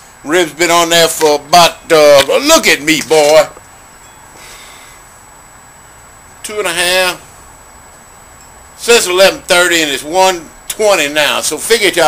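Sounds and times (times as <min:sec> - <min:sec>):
background hiss: 0:00.0 - 0:12.0
breath close to microphone: 0:04.4 - 0:05.2.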